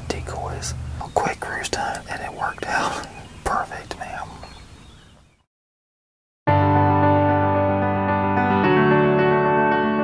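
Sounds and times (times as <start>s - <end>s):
man laughing softly in a whisper: 2.7s - 3.2s.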